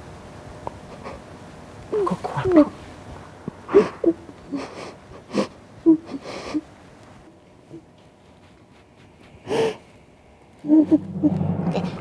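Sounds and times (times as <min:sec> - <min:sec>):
woman sobbing gasp: 0:03.7 - 0:06.6.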